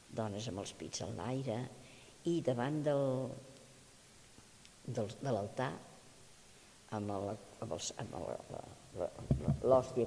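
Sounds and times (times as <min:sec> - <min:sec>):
woman talking: 0:00.1 - 0:03.4.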